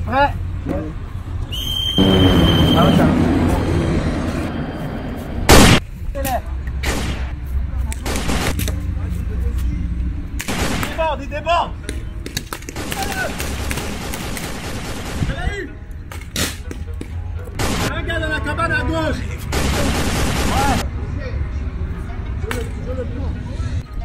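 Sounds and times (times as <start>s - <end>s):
paintball gun shots: 8.0s - 8.7s, 10.4s - 11.1s, 12.3s - 15.4s.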